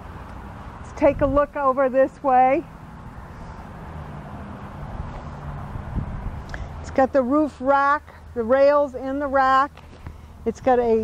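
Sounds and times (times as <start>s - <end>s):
outdoor background noise: 0.0s - 11.0s
vehicle engine humming: 0.0s - 11.0s.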